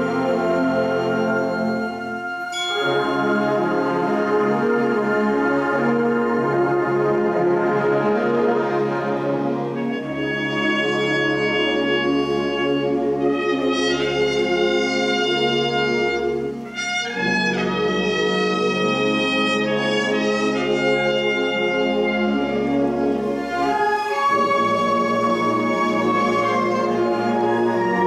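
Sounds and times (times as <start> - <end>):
wind band playing held chords: 0.0 - 28.0.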